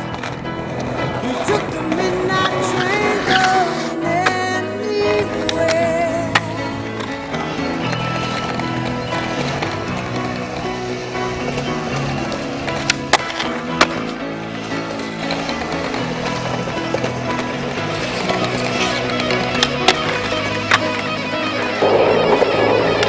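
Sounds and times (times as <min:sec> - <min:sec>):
background music: 0:00.0 - 0:23.0
skateboard clacks: 0:00.0 - 0:23.0
skateboard grinding concrete: 0:00.0 - 0:23.0
skateboard wheels rolling: 0:00.0 - 0:23.0.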